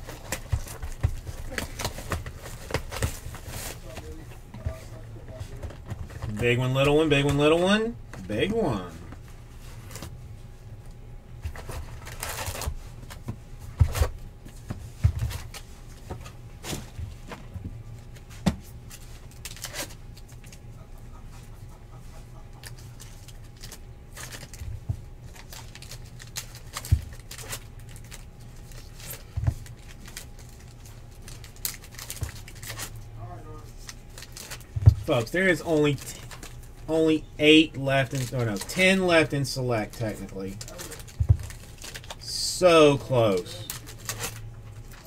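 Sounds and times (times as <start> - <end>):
card packs tapping and rustling: 0.0 - 8.6, 22.6 - 33.0, 33.7 - 36.7, 37.8 - 45.0
low steady hum: 0.0 - 45.0.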